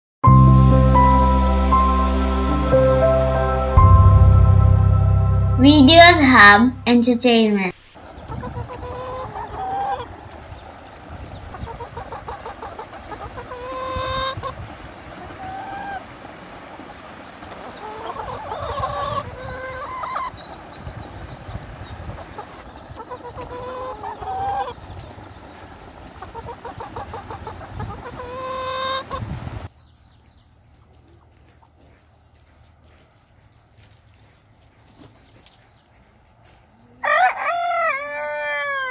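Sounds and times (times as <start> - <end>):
chickens clucking: 7.9 - 33.4, 36.7 - 38.9.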